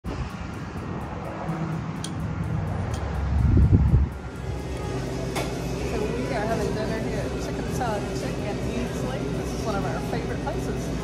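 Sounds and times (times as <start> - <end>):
wind buffeting microphone: 0.1 - 4.7.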